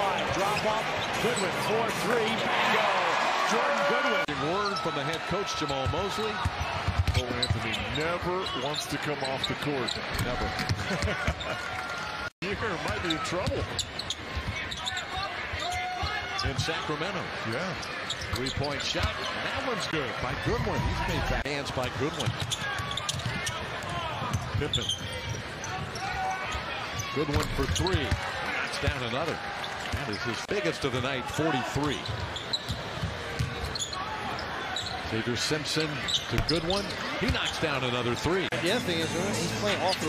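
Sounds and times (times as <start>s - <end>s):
arena crowd noise: 0.0s - 40.0s.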